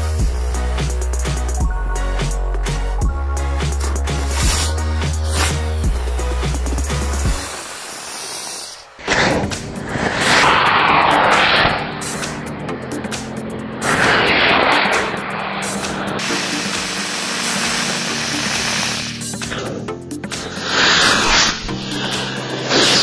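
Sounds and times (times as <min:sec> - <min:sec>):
background music with beat: 0:00.0 - 0:07.8, 0:09.1 - 0:23.0
small rockets firing with hiss: 0:03.6 - 0:12.5, 0:13.8 - 0:23.0.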